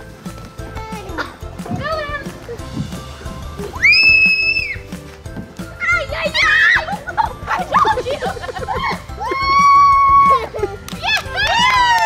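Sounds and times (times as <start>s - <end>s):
background music: 0.0s - 12.0s
child squealing: 3.8s - 4.8s.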